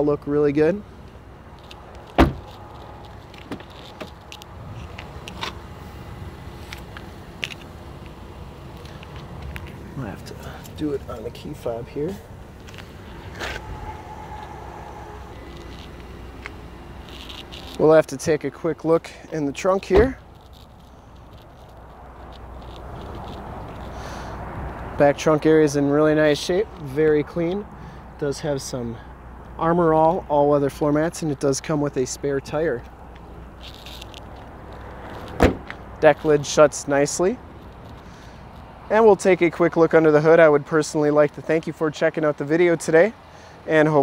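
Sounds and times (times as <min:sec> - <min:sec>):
outdoor background noise: 0:00.0 - 0:44.0
faint rustle: 0:06.6 - 0:18.0, 0:20.2 - 0:24.9, 0:32.8 - 0:36.4, 0:37.5 - 0:38.7.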